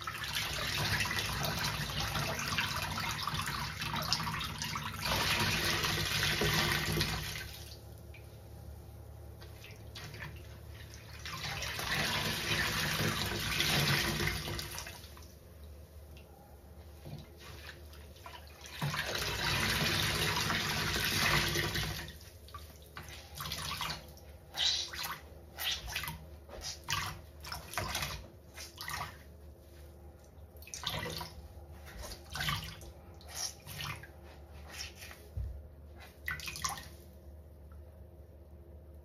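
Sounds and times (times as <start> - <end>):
water wrung from sponge: 22.1 - 37.2
wet sponge squelches: 22.2 - 37.2.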